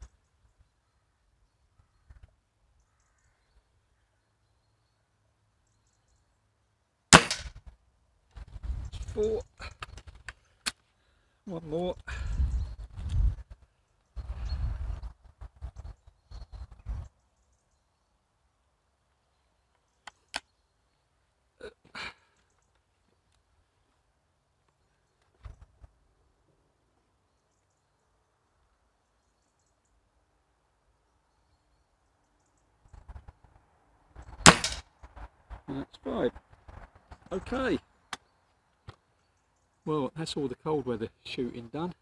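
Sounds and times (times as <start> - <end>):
air rifle shot: 7.2 - 7.5, 34.5 - 34.8
rifle barrel clicks: 7.2 - 7.5.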